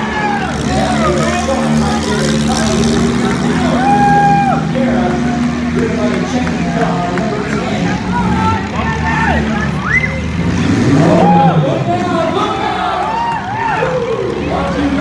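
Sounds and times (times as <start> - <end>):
car engines revving: 0.0 - 15.0
voices: 0.0 - 15.0.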